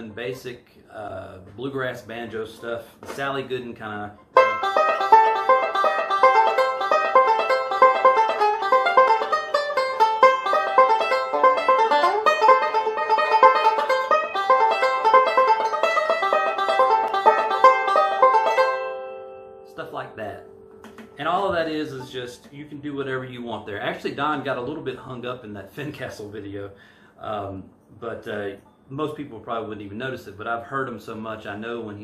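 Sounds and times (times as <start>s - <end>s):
banjo picking fast rolls: 2.2s - 19.2s.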